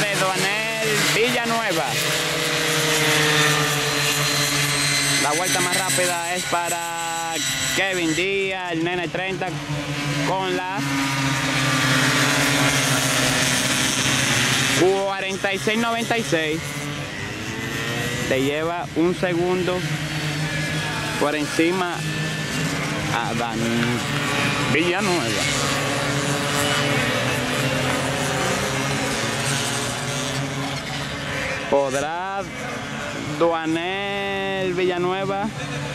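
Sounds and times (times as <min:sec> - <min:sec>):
minibike engines at high revs: 0:00.0 - 0:35.9.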